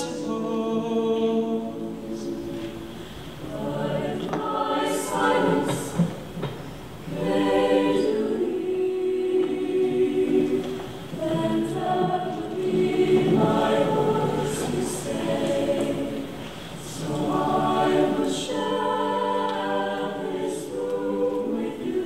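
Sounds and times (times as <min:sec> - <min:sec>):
choir singing in harmony: 0:00.0 - 0:22.0.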